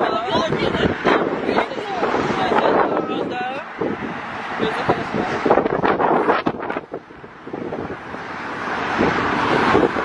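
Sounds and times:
traffic noise: 0.0s - 10.0s
wind on microphone: 0.0s - 10.0s.

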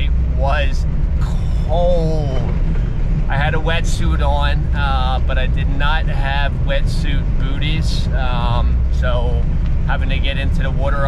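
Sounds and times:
person speaking: 0.0s - 2.7s, 3.3s - 11.0s
car engine rumble: 0.0s - 11.0s
road noise inside car: 0.0s - 11.0s.

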